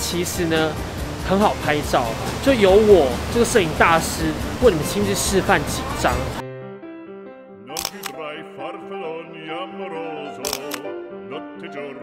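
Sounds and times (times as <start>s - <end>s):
upbeat background music: 0.0s - 12.0s
camera shutter clicks: 7.8s - 8.2s, 10.4s - 10.9s.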